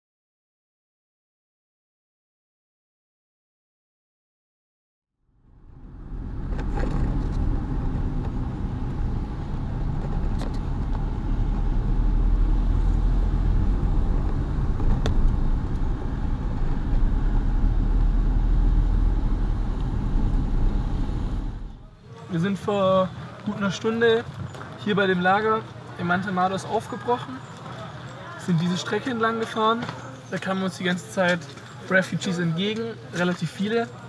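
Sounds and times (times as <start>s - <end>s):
car engine and tyres on wet road: 5.5s - 21.8s.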